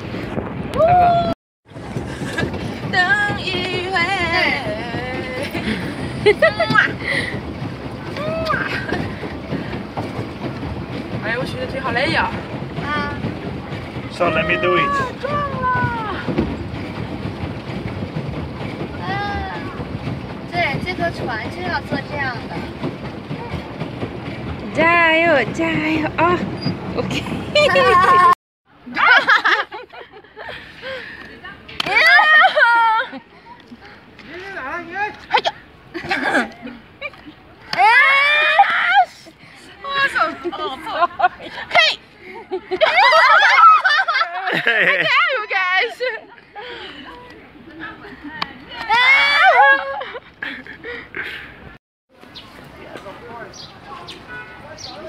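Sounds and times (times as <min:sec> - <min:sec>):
wind on microphone: 0:00.0 - 0:28.2
women's voices: 0:02.9 - 0:06.9.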